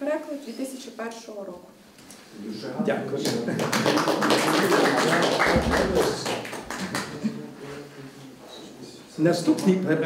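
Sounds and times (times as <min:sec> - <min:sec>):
audience applauding: 0:03.3 - 0:07.3.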